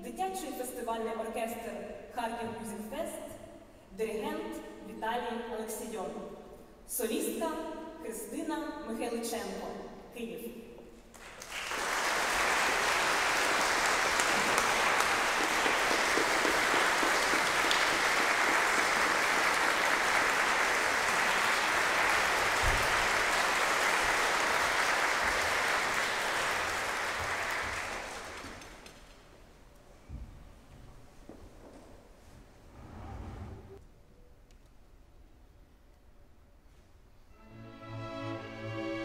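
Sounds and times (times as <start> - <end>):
audience applause: 11.2 - 29.1.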